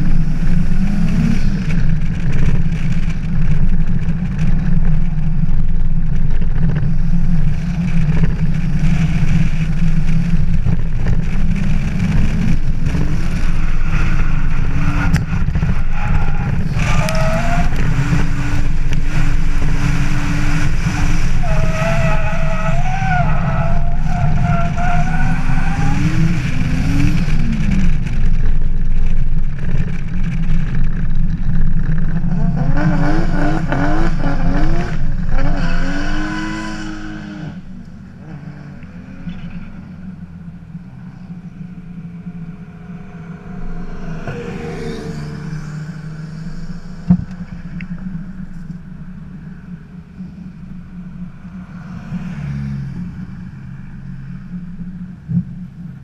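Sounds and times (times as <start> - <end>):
car engine revving: 0.0 - 56.0
car engine idling: 38.8 - 51.8.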